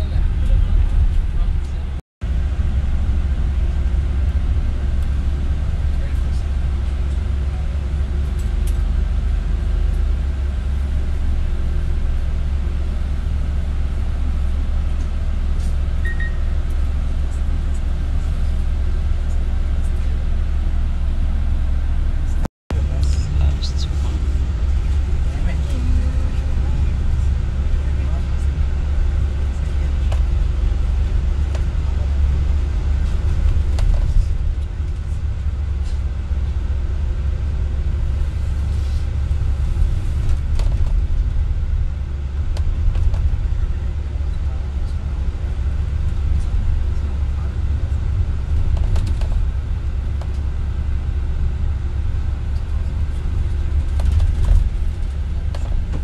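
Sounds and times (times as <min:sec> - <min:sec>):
vehicle driving low rumble: 0:00.0 - 0:56.0.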